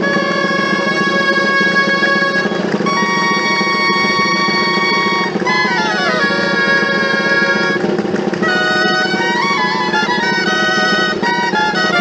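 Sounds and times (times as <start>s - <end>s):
drum: 0.0s - 12.0s
reed shawms playing dance tune: 0.0s - 12.0s.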